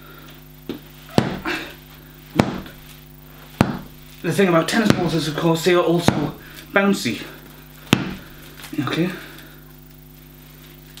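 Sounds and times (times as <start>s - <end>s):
balls thumping punching bag: 0.7s - 1.7s, 2.3s - 2.8s, 3.5s - 4.0s, 4.7s - 6.5s, 7.8s - 8.4s.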